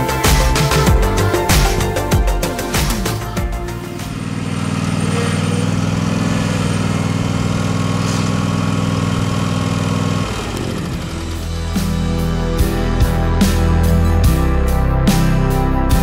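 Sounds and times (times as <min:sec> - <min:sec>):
music: 0:00.0 - 0:04.3, 0:10.9 - 0:16.0
riding mower engine running: 0:00.0 - 0:16.0.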